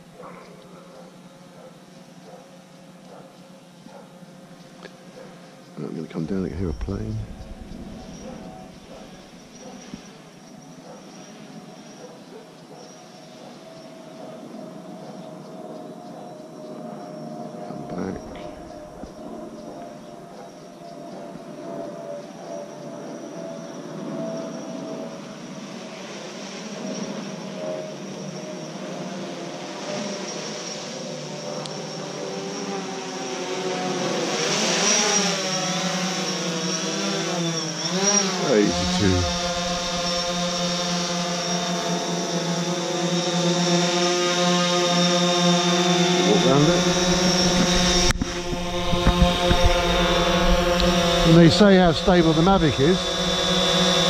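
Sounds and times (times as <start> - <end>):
drone propellers humming: 5.0 - 10.4, 17.0 - 20.6, 34.5 - 54.0.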